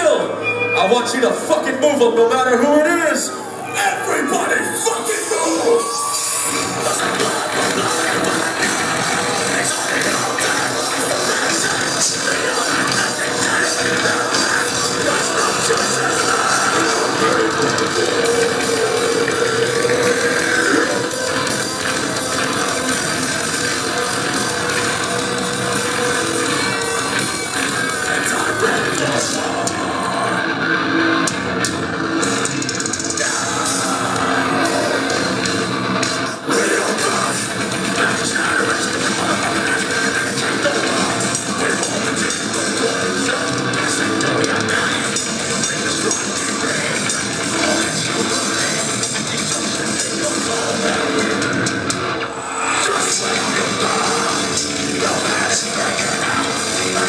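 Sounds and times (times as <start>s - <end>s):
metal band playing live: 0.0s - 57.0s.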